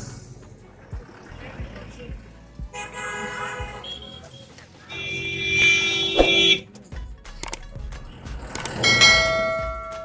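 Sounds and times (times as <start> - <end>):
vehicle horn honking: 2.7 - 6.7
higher-pitched vehicle horn: 2.8 - 6.7.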